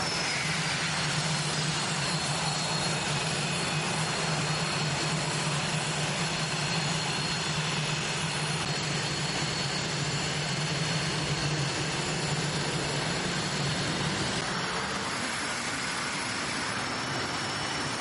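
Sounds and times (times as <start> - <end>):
jet engines roaring with whine: 0.0 - 18.0.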